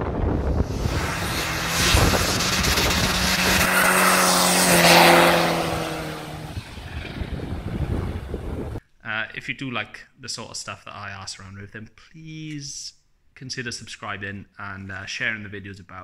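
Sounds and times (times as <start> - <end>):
van engine driving past: 0.7 - 8.8.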